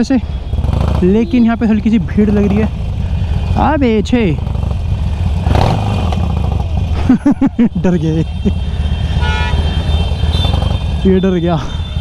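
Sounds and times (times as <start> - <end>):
motorcycle engine idling: 0.1 - 12.0.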